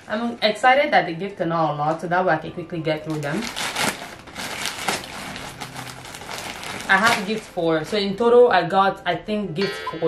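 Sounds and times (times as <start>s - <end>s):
plastic mailer bag crinkling: 3.0s - 8.1s.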